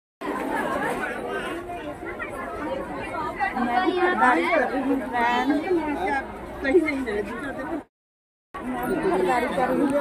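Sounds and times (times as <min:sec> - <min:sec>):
market crowd chatter: 0:00.2 - 0:07.9, 0:08.6 - 0:10.0.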